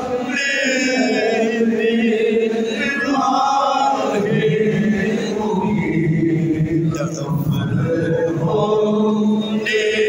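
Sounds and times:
man chanting unaccompanied: 0.0s - 10.0s.

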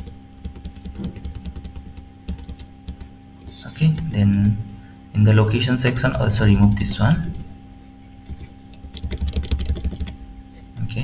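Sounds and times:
computer keyboard typing: 0.0s - 4.1s, 8.2s - 10.2s
faint steady hum: 0.0s - 11.0s.

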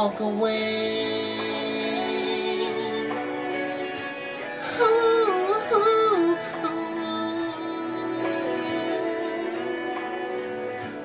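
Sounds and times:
man singing wordless vocal run: 0.0s - 3.5s, 4.6s - 10.4s
pop ballad backing track: 0.0s - 11.0s.

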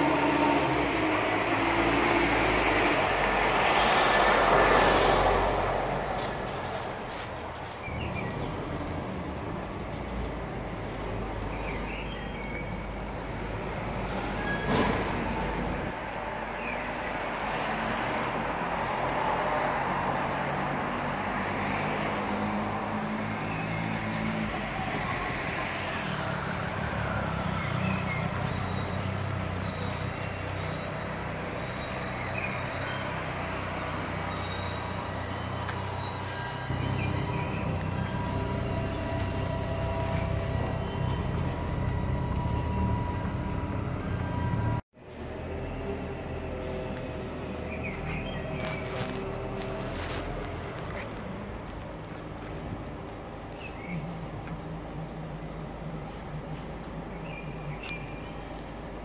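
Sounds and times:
city background noise: 0.0s - 59.0s.

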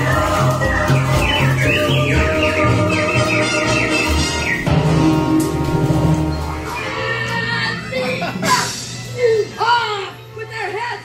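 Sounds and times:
falling bird-like whistles: 0.6s - 5.0s.

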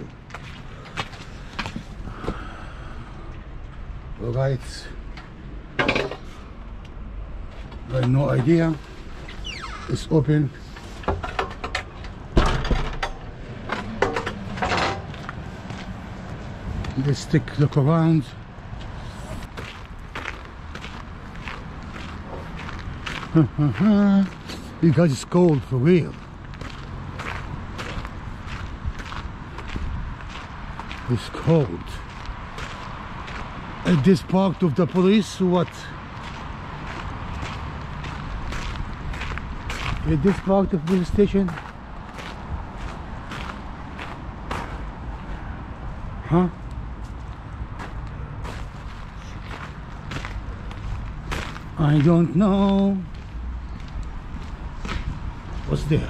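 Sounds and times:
footsteps on gravel: 0.1s - 2.3s, 15.0s - 17.7s, 18.7s - 45.3s, 47.0s - 56.0s.

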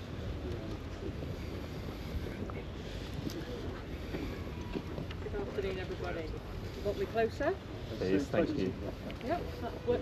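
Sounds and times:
wind buffeting microphone: 0.0s - 10.0s
people talking indistinctly: 1.8s - 10.0s.

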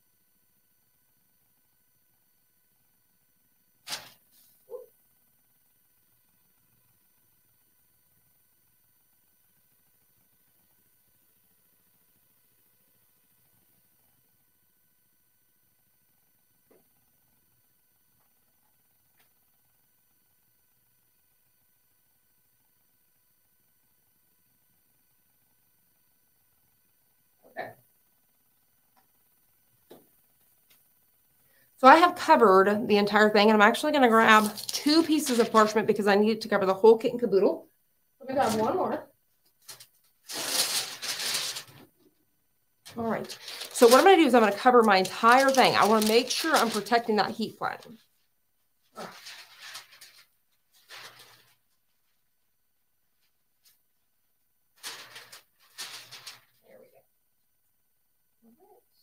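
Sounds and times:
paper sheets rustling: 3.8s - 4.2s, 34.0s - 36.0s, 39.6s - 41.9s, 42.9s - 48.0s, 49.0s - 52.0s, 54.8s - 56.6s.

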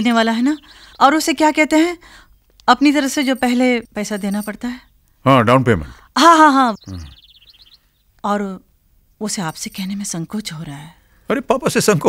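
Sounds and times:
bird chirping: 0.0s - 8.6s, 9.2s - 10.9s
man saying a word: 6.9s - 7.1s.

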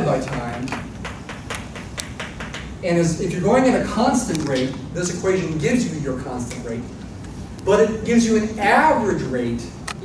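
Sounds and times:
chalk tapping on blackboard: 0.1s - 2.8s.

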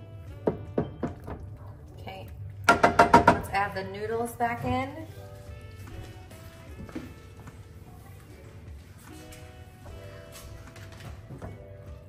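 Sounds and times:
wooden spoon knocking on pan: 0.4s - 1.5s, 2.7s - 3.6s.

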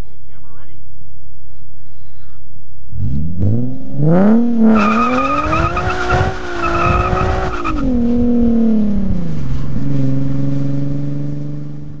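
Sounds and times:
car engine under load: 2.9s - 12.0s.

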